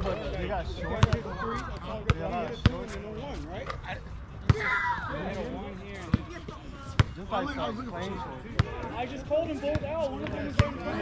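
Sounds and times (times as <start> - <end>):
basketball bouncing on hard court: 1.0 - 1.2.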